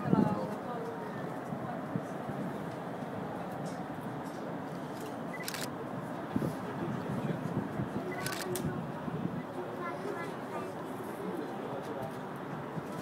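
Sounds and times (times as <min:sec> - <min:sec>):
voices chattering: 0:00.0 - 0:13.0.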